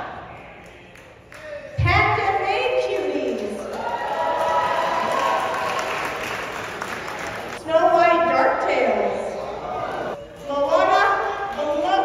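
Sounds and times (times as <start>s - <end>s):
audience applauding: 3.6s - 7.6s.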